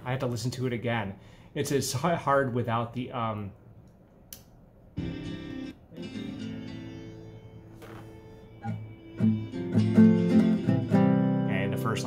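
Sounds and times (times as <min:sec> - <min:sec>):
classical guitar strumming: 0:05.0 - 0:12.0.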